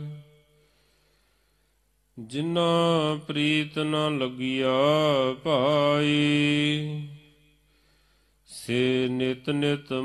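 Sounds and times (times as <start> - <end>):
man chanting: 0.0 - 0.4, 2.2 - 7.5, 8.5 - 10.0.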